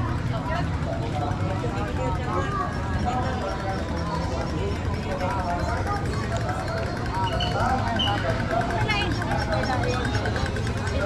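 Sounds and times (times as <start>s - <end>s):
low street noise: 0.0s - 11.0s
people chattering: 0.0s - 11.0s.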